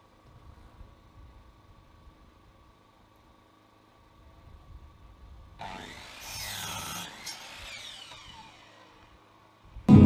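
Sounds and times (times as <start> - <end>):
miter saw cutting wood: 5.6 - 9.4.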